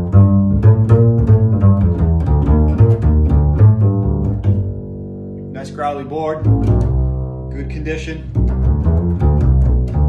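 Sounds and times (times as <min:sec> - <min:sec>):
double bass plucked notes: 0:00.0 - 0:10.0.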